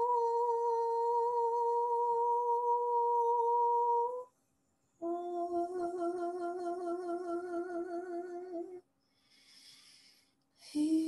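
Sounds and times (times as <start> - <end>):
woman humming long note: 0.0 - 4.3, 5.0 - 8.8
soft breathy hiss: 8.7 - 11.0.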